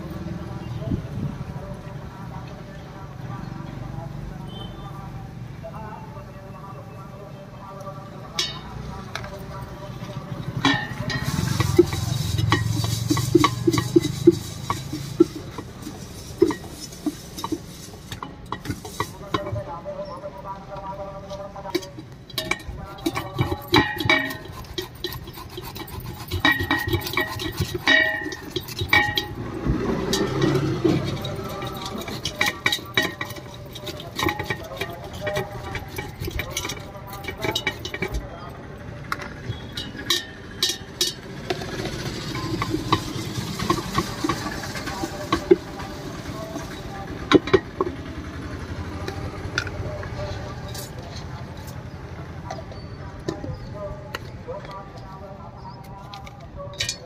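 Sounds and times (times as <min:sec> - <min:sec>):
people talking: 0:00.0 - 0:57.0
steel grater scraping: 0:10.6 - 0:19.5, 0:21.7 - 0:38.3, 0:39.4 - 0:47.9
knife clinking on steel pot: 0:10.6 - 0:19.6, 0:21.7 - 0:38.3, 0:39.5 - 0:47.9.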